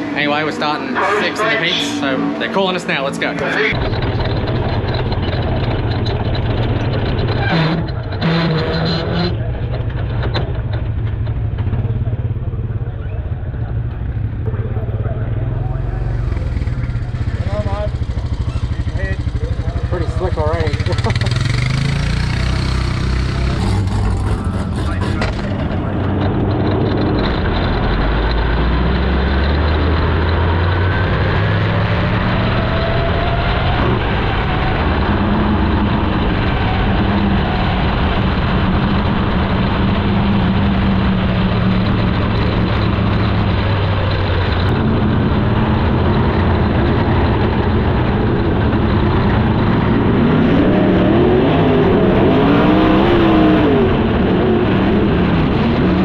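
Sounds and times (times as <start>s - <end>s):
race car engine running: 0.0s - 56.0s.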